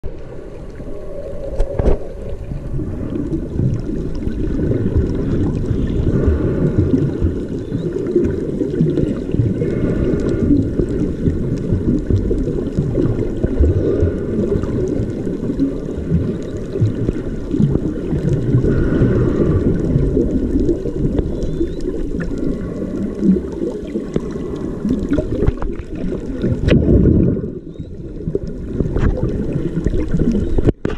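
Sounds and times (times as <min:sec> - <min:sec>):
faint underwater bubbling: 0:00.0 - 0:30.9
muffled underwater rumble: 0:00.0 - 0:30.9.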